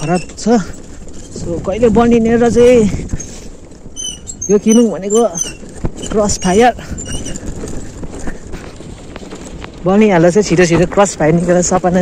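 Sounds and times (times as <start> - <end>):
scooter rumbling on dirt track: 0.0 - 12.0.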